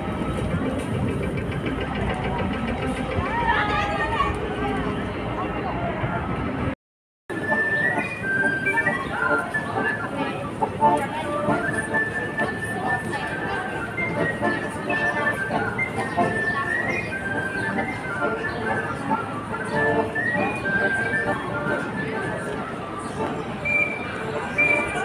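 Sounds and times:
people talking: 0.0s - 25.0s.

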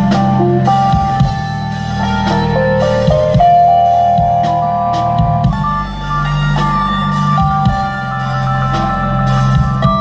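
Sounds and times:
drum kit hits: 0.0s - 10.0s
electric bass: 0.0s - 10.0s
lead line in long notes: 0.0s - 10.0s.

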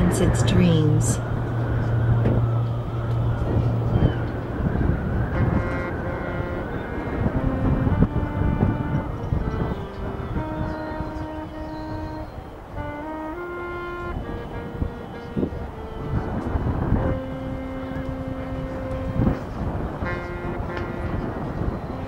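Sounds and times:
marching band music: 0.0s - 22.0s.

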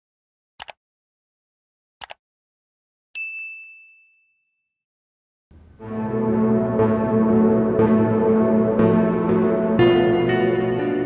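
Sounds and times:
notification bell ding: 3.2s - 4.6s.

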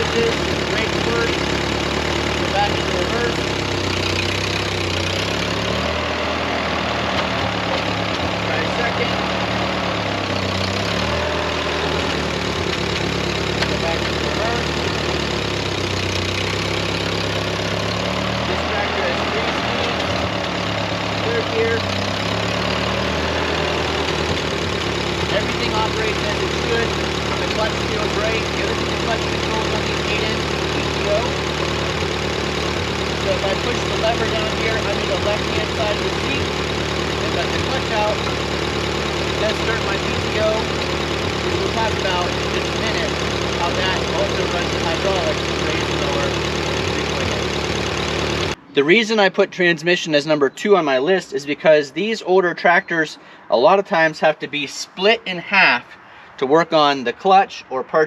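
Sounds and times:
tractor engine running: 0.0s - 52.2s.

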